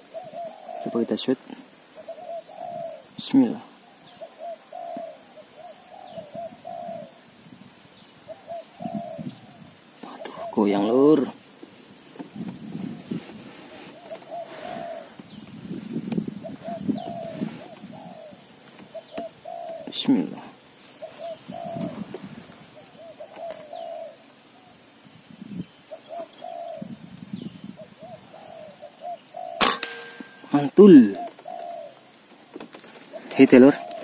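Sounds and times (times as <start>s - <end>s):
doves cooing: 0.0s - 34.0s.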